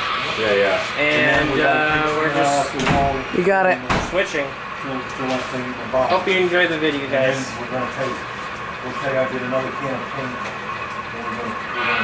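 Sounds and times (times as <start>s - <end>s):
steady background hum: 0.0s - 12.0s
indistinct voices talking: 0.4s - 12.0s.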